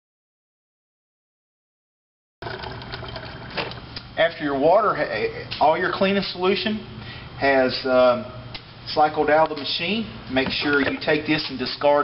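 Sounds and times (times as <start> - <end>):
water running into plastic pitcher: 2.4 - 3.9.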